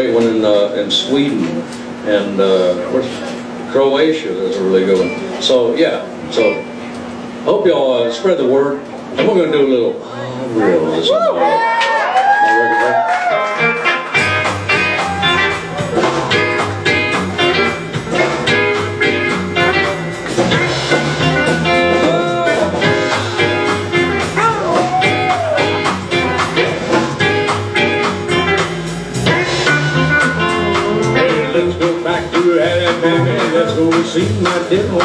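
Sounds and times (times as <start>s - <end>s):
electric guitar: 12.9s - 35.0s
upright bass: 13.3s - 35.0s
pedal steel guitar sliding notes: 13.4s - 32.1s
drum beat: 13.6s - 35.0s.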